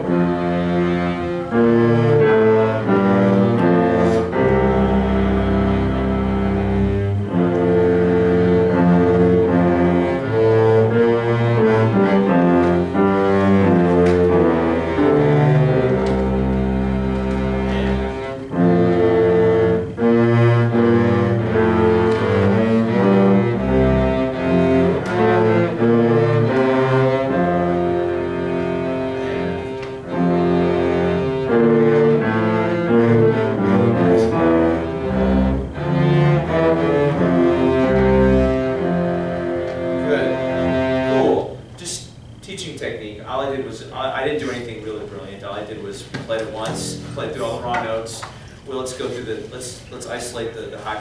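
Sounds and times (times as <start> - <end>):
cello ensemble playing slow notes: 0.0 - 42.4, 43.3 - 49.2.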